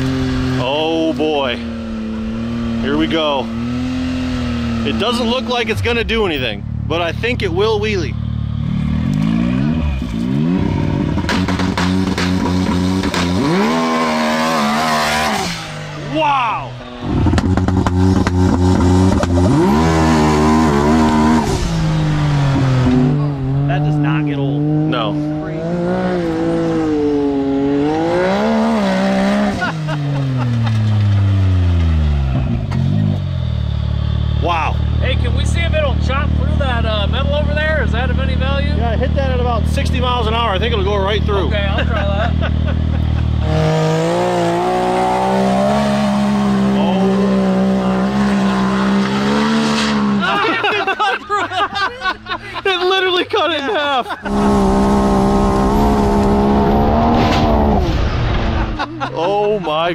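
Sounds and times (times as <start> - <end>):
engine revving hard: 1.9 - 16.0, 17.0 - 30.7, 35.0 - 50.8, 54.2 - 58.9.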